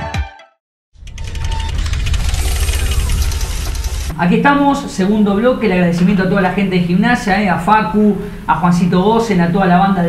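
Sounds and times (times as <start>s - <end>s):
bass-heavy fluttering rumble: 1.0s - 4.2s.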